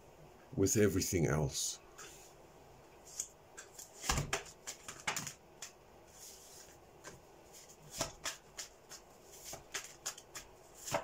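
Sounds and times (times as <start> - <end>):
cards being shuffled: 3.1 - 11.0.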